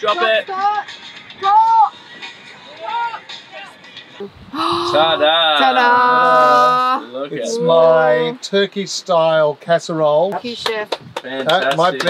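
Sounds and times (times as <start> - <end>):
soft background music: 0.0 - 8.4
faint voice: 4.2 - 7.8.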